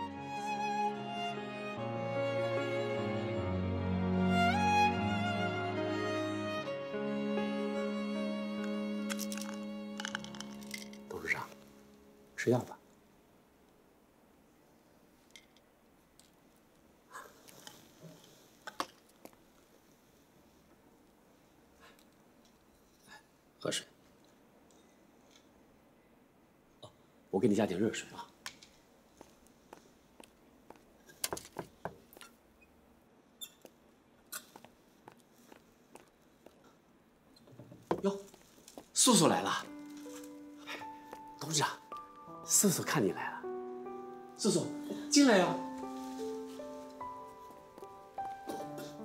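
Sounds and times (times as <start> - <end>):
sad string music: 0.0 - 13.2, 39.0 - 49.0
medicine packaging crackling: 8.6 - 11.7, 38.1 - 42.1
footsteps on hard floor: 45.7 - 49.0.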